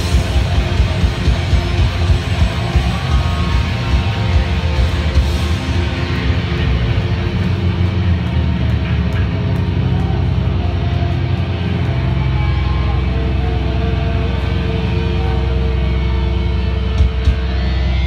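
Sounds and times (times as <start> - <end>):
live rock band playing loud: 0.0 - 18.0.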